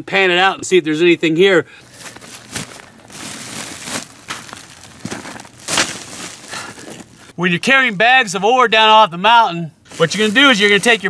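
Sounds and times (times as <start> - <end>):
bags crinkling and rustling: 1.8 - 7.3, 9.9 - 11.0.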